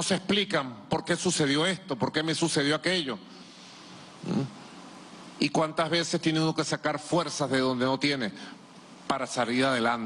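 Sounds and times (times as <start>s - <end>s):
faint room hiss: 0.0s - 10.0s
man's throaty vocal sound: 4.2s - 4.6s.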